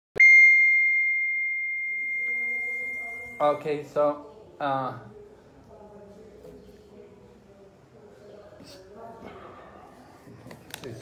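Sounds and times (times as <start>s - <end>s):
small bell ringing: 0.2s - 3.6s.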